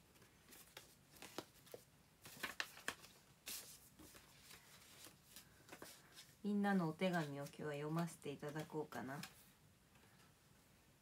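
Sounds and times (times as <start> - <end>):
paper rustling: 0.0 - 9.5.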